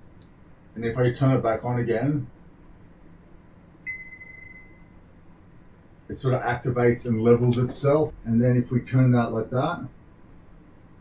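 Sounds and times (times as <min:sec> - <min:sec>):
high electronic ding: 0:03.9 - 0:04.9.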